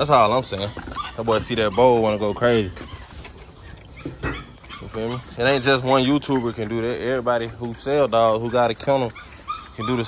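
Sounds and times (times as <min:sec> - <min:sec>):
dog making excited noises: 0:00.0 - 0:10.0.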